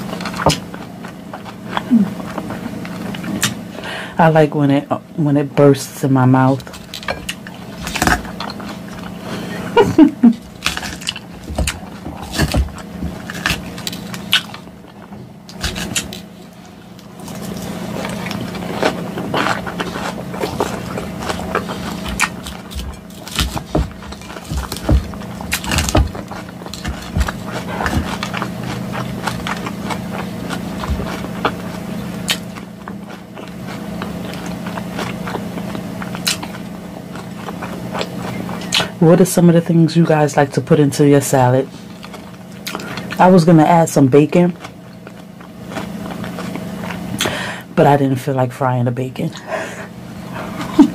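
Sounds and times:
crunching and wet chewing: 0.0 - 3.9, 6.2 - 40.1, 41.1 - 47.8, 49.8 - 50.9
low hum: 0.0 - 50.9.

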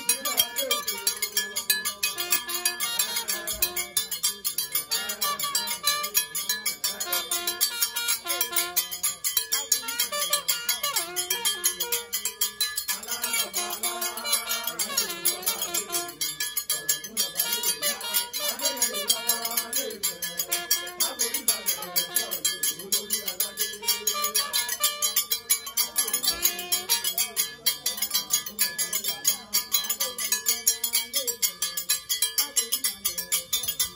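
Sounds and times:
fast metal bell pattern: 0.0 - 33.9
music with fast percussion beat: 0.0 - 33.9.

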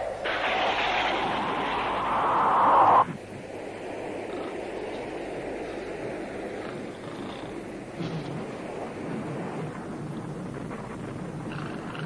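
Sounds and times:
loud rushing noise: 0.0 - 4.0
faint noise: 0.0 - 12.0.

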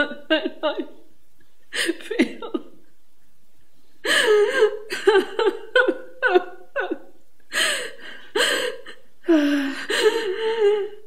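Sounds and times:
woman sobbing: 0.0 - 1.0, 1.7 - 2.8, 4.0 - 11.0.

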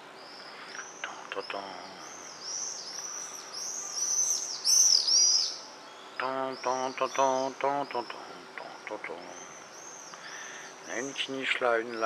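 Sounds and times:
swifts screaming: 0.0 - 12.0.

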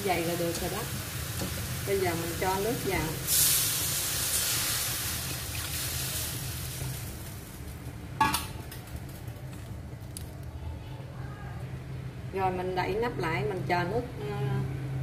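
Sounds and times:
water sizzling in hot wok: 0.0 - 7.9.

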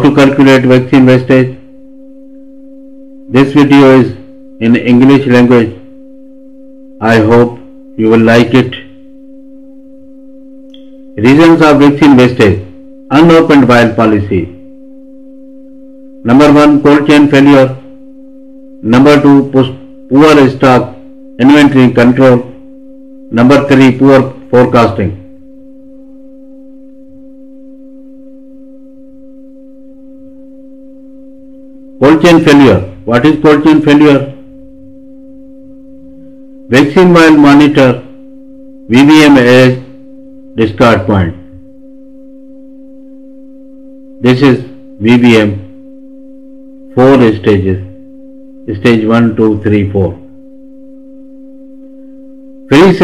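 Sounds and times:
low hum-like tone: 0.0 - 53.0.

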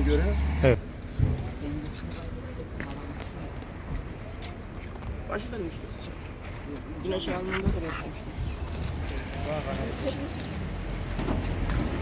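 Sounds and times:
faint indistinct voices: 1.1 - 11.7.

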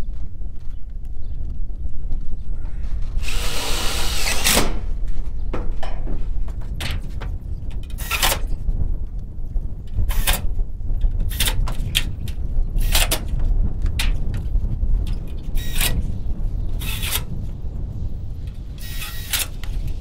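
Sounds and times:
cordless drill driving screws: 3.2 - 4.8, 15.6 - 16.0, 16.8 - 17.2, 18.8 - 19.5.

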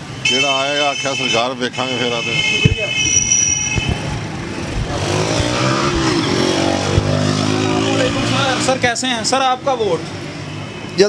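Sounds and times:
street noise: 0.0 - 11.0
motorbike engine revving: 3.0 - 10.0.

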